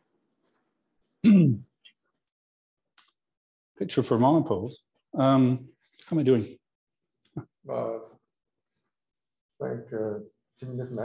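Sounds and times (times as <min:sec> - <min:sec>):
man clearing his throat: 0:01.2 - 0:01.7.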